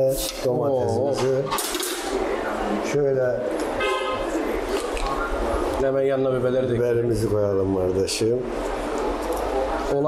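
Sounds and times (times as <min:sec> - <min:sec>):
noisy kitchen background: 0:00.0 - 0:10.0.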